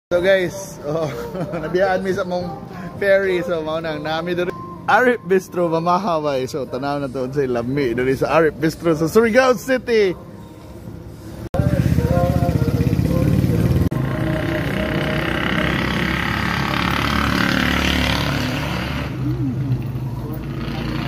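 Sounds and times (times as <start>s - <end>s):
hiss of passing traffic: 10.4s - 13.9s
vehicle engine running close by: 11.6s - 21.0s.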